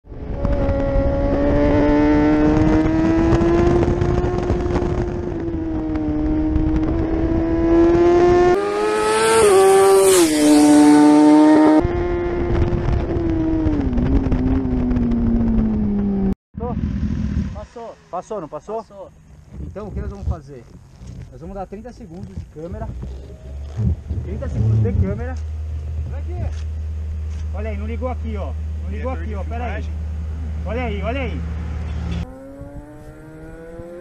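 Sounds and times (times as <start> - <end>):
motorcycle engine revving high: 0.1 - 18.0, 22.3 - 26.5, 28.6 - 34.0.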